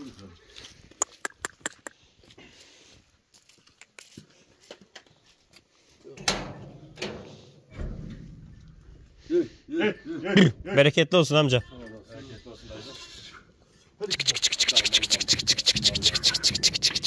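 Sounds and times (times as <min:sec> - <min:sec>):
footsteps on stony ground: 0:00.0 - 0:06.0.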